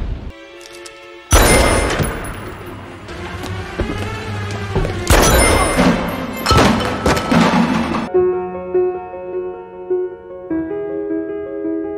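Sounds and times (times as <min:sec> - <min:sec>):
background music: 0:00.1 - 0:11.9
heavy thuds and clatter: 0:03.4 - 0:08.1.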